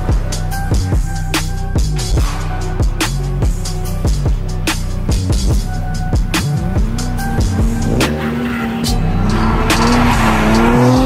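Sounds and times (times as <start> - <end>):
background music with beat: 0.0 - 11.0
car engine revving: 0.0 - 11.0.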